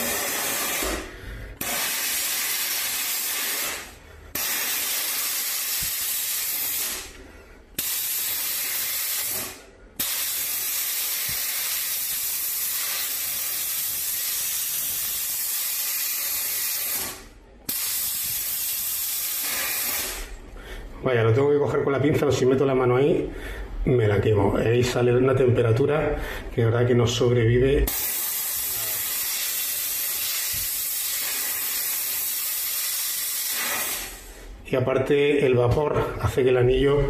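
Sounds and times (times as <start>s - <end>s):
steam cleaner hissing: 0.0s - 20.4s, 27.9s - 34.6s.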